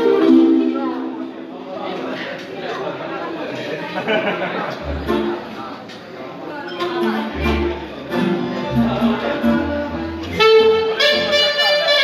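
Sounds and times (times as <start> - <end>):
keyboard chords: 0.0 - 1.4, 4.8 - 5.5
guests chattering: 0.0 - 12.0
low bass notes: 4.8 - 5.4, 8.5 - 10.4
reed wind instrument held note: 10.2 - 12.0.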